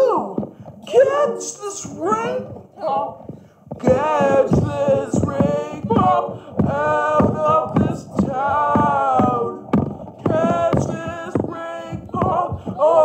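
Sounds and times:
person singing unaccompanied: 0.0s - 13.0s.

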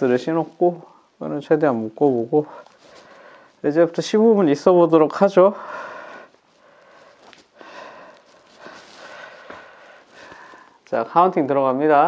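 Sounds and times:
man breathing heavily: 2.5s - 3.6s, 5.5s - 10.8s.

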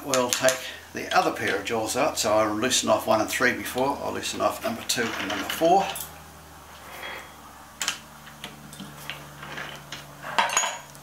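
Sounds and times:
metal clatter: 9.0s - 11.0s.

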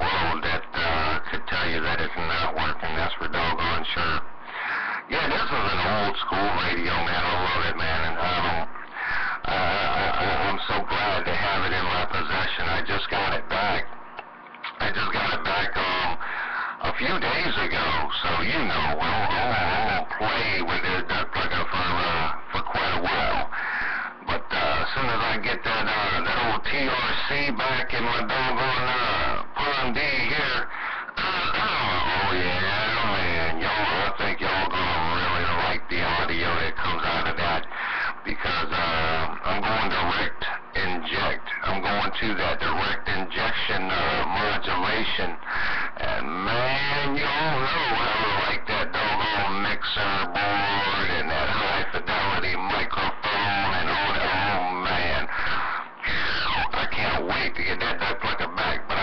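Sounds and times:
garbled voices over radio speaker: 0.0s - 59.0s.

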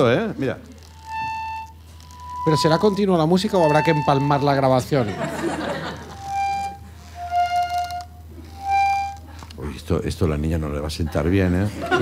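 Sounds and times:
toy accordion notes: 0.8s - 5.0s, 5.7s - 9.5s.

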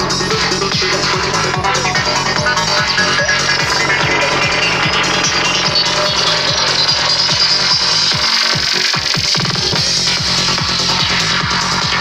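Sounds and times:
trance dance music: 0.0s - 12.0s.

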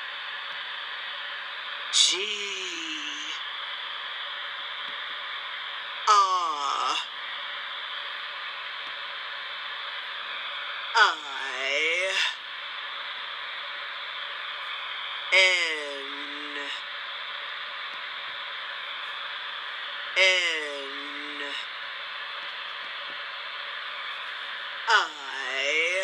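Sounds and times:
hiss and hum through phone speaker: 0.0s - 26.0s
app voice call with swooping pitch: 11.0s - 12.4s, 24.9s - 26.0s.

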